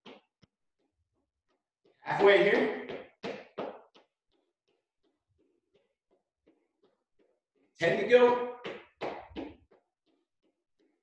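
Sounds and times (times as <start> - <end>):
soft thuds of hops on rubber floor: 0.0 - 7.8, 8.6 - 11.0.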